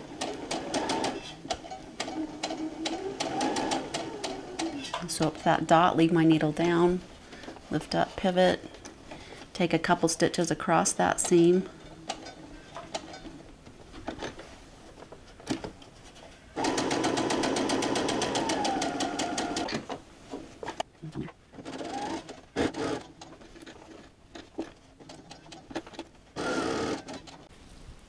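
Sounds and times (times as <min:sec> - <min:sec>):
sewing machine stitching: 0:00.0 - 0:05.0, 0:16.6 - 0:19.8, 0:21.6 - 0:27.5.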